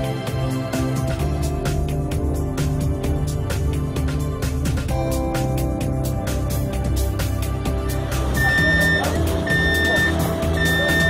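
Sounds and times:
background music with beat: 0:00.0 - 0:11.0
high electronic beep: 0:08.4 - 0:11.0.

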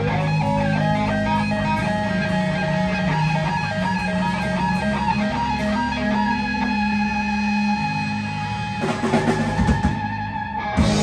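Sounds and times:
bass guitar: 0:00.0 - 0:11.0
electric guitars: 0:00.0 - 0:11.0
drum kit heavy hits: 0:08.7 - 0:11.0.

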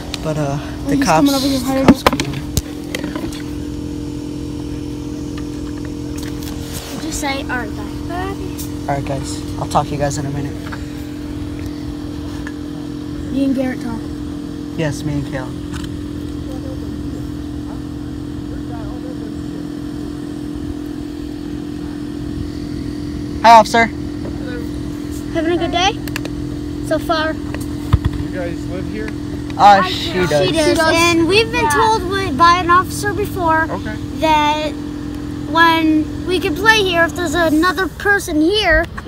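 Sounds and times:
steady motor hum: 0:00.0 - 0:39.0.

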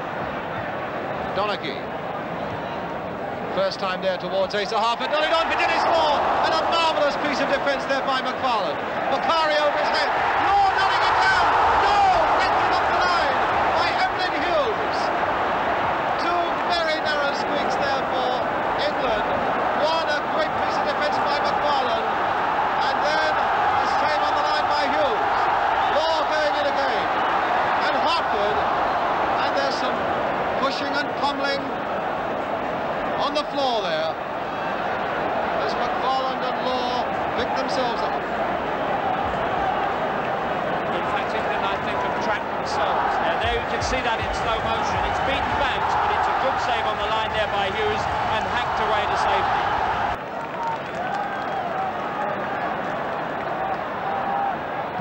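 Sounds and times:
stadium crowd noise: 0:00.0 - 0:55.0.

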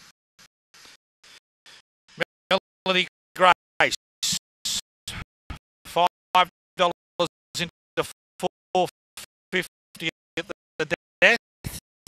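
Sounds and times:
race caller's voice: 0:02.5 - 0:04.0, 0:08.4 - 0:08.9.

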